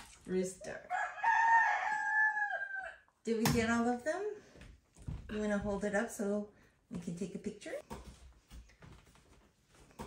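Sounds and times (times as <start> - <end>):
rooster crowing through speaker: 0.9 - 3.1.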